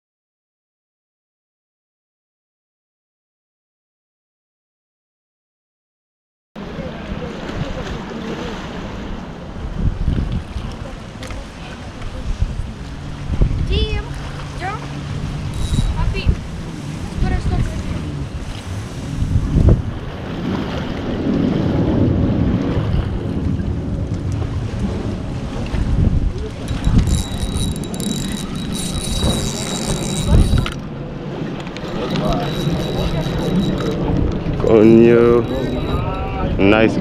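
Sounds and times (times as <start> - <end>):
wind rumbling on microphone: 6.6 - 37.0
fishing reel cranking: 15.3 - 16.4, 26.6 - 30.8, 31.6 - 36.3
high scratchy sound: 15.5 - 16.3, 26.7 - 30.8, 31.8 - 36.1.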